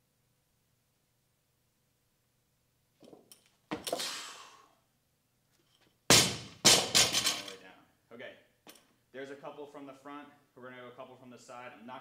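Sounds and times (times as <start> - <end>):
barbell dropped on rubber floor: 6.1 - 7.5
plates rattling on bar: 6.8 - 7.5.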